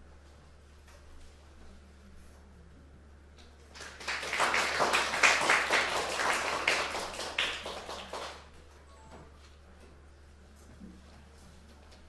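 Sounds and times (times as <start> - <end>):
audience applause: 3.7 - 8.5.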